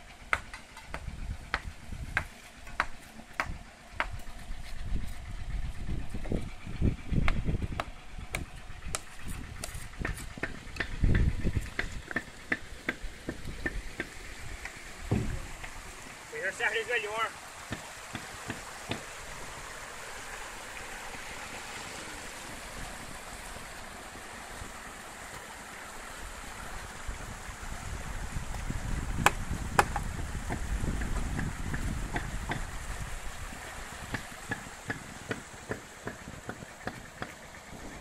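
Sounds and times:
machinery engine rumble: 0.0 - 17.7, 18.3 - 38.0
stream rushing over rocks: 11.7 - 38.0.

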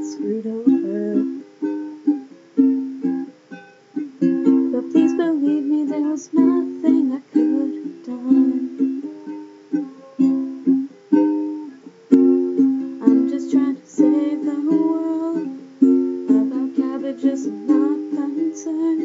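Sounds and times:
acoustic string instrument strummed: 0.0 - 19.0.

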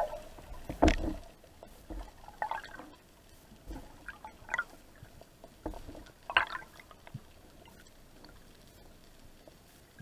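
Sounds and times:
low underwater hiss: 0.0 - 10.0
faint clicks: 4.7 - 10.0.

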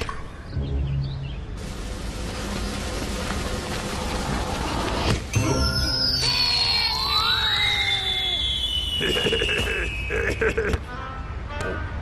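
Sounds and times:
rising whistle: 5.6 - 10.1
high whistle falling in pitch: 5.7 - 10.1
low sliding whistle: 5.9 - 10.1.

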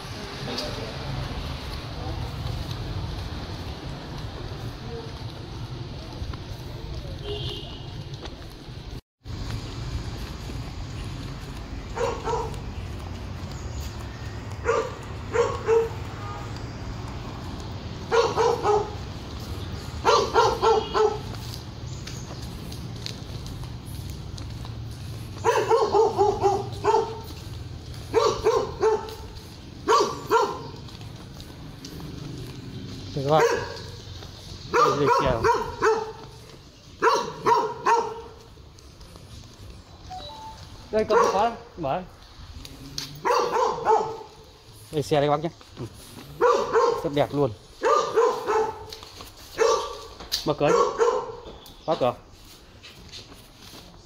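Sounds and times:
dog barking: 11.9 - 12.6, 14.6 - 16.1, 18.0 - 19.0, 20.0 - 21.5, 25.4 - 30.8, 33.3 - 34.0, 34.7 - 36.4, 37.0 - 38.4, 41.0 - 41.7, 43.2 - 44.4, 46.4 - 47.2, 47.8 - 51.5.

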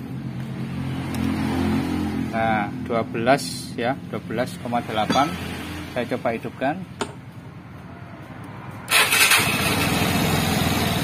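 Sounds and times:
scooter engine starting and running: 8.9 - 11.0.

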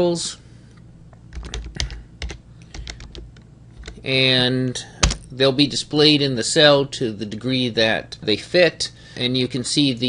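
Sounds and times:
computer keyboard typing: 1.3 - 4.0.

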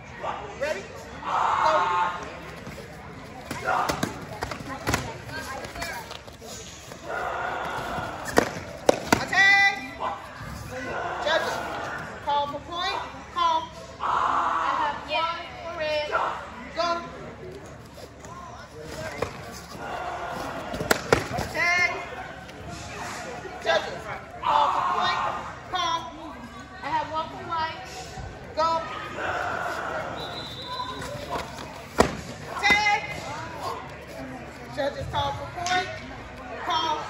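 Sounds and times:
crowd chatter: 0.0 - 37.0
voices in a big hall: 0.0 - 37.0.

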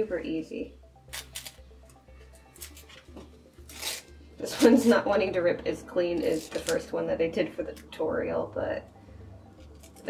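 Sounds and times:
quiet background music: 0.0 - 10.0
fabric tearing: 3.7 - 4.8, 6.2 - 6.8.

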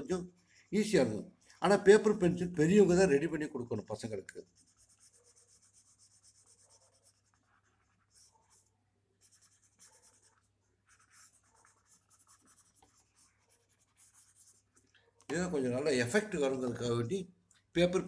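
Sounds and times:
pencil scratching on paper: 3.7 - 14.9.

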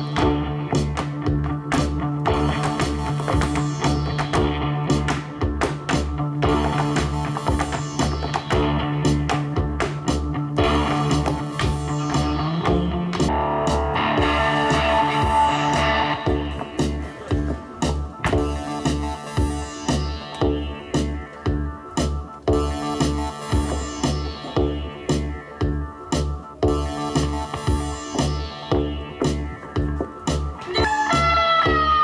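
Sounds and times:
electric guitar music: 0.0 - 32.0
pulsing bass beat: 0.0 - 32.0.

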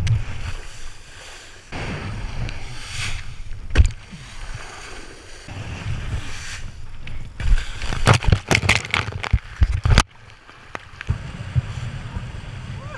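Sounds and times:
wind buffeting camera: 1.7 - 12.9.

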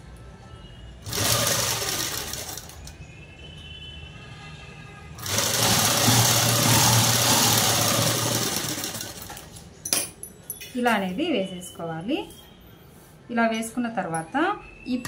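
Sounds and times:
sewing machine stitching: 1.0 - 2.9, 5.2 - 9.6.

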